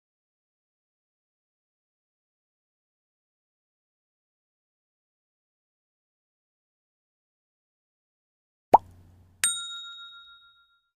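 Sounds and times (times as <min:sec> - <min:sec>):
bright bell ding: 0:09.4 - 0:11.0.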